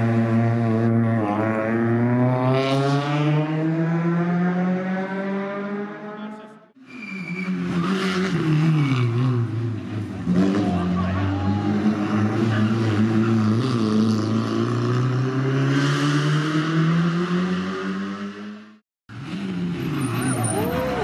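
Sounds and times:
rally car engine: 0:00.0 - 0:21.0.

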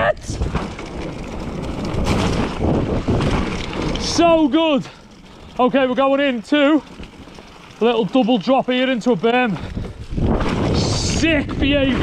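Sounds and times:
wind over microphone: 0:00.0 - 0:05.8, 0:09.2 - 0:12.0
bike tyres rumbling and rattling: 0:00.0 - 0:12.0.

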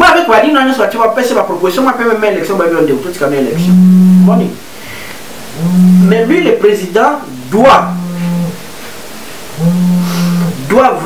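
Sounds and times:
man's drawn-out hesitation sound: 0:01.9 - 0:04.6, 0:05.6 - 0:08.5.

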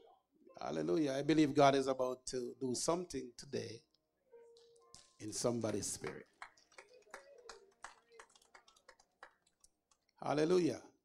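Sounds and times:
faint hand claps: 0:04.5 - 0:10.2.

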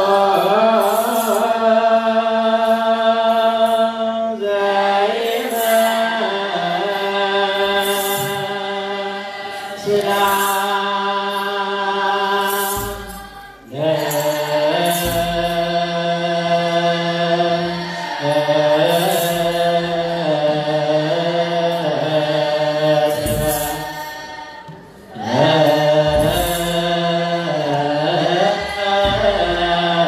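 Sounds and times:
young voices chanting a hymn: 0:00.0 - 0:30.0.

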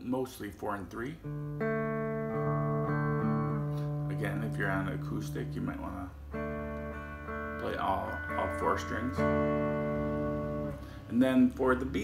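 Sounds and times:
electric guitar chord ringing: 0:01.2 - 0:12.0.

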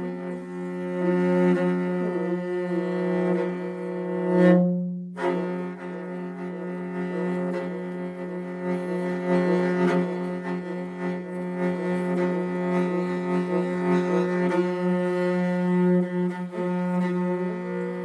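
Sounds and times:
bowed horse-head fiddle: 0:00.0 - 0:18.0.

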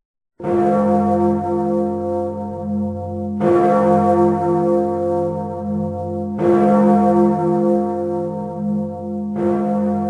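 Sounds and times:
large deep bell tolling: 0:00.4 - 0:10.0.

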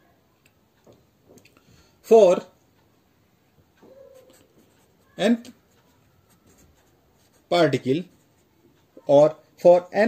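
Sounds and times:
person speaking: 0:02.0 - 0:02.6, 0:03.9 - 0:10.0
pen scratching on paper: 0:04.2 - 0:08.5.

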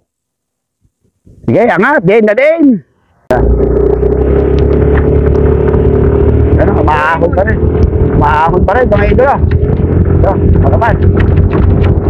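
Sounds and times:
vehicle engine running: 0:03.3 - 0:12.0.

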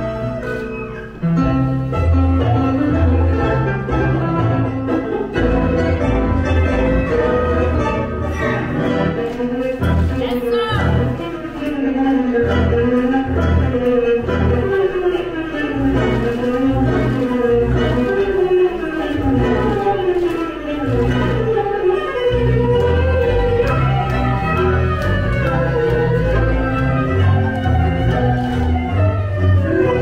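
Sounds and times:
pulsing bass beat: 0:22.4 - 0:30.0.

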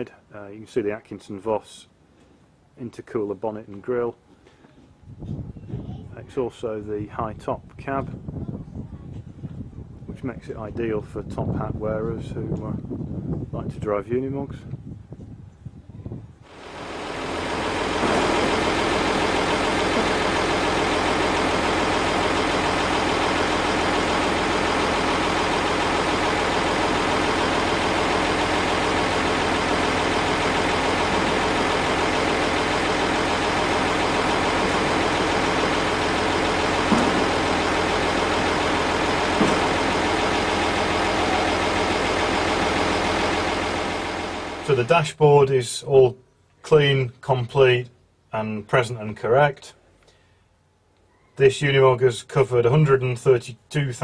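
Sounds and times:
diesel engine running: 0:16.4 - 0:45.1.

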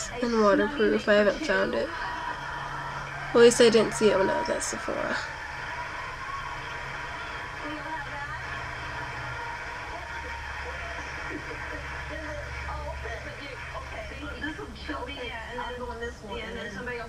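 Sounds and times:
faint television talk: 0:00.0 - 0:17.0.

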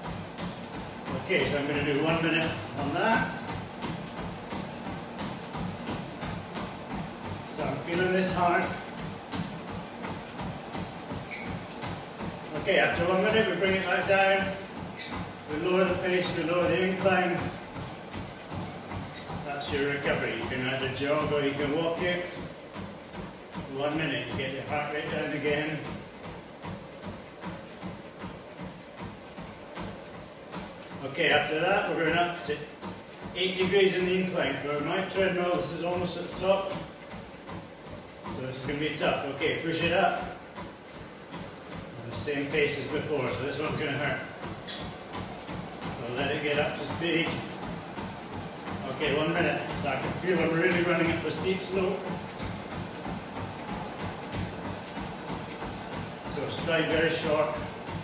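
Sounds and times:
footfalls on treadmill: 0:00.0 - 0:58.0
treadmill running noise: 0:00.0 - 0:58.0.

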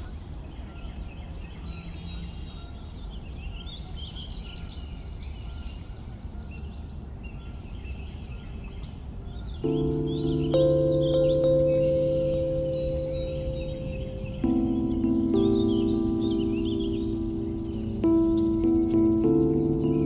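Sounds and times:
birds chirping and trilling: 0:00.0 - 0:20.0
low background noise: 0:00.0 - 0:20.0
soft ambient music chords: 0:09.6 - 0:20.0.

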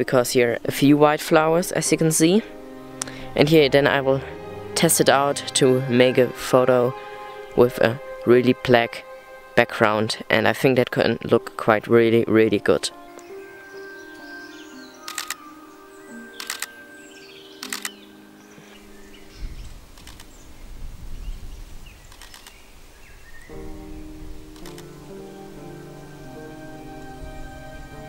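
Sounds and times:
soft background music: 0:00.0 - 0:21.2, 0:23.4 - 0:28.0
camera shutter clicks: 0:15.1 - 0:15.4, 0:16.4 - 0:16.7, 0:17.6 - 0:18.0, 0:20.0 - 0:20.3, 0:22.1 - 0:22.6, 0:24.6 - 0:24.9.

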